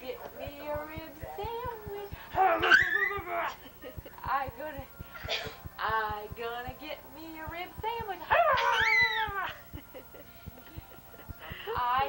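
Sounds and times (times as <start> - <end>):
baby squealing and cooing: 2.6 - 3.6, 8.5 - 9.5.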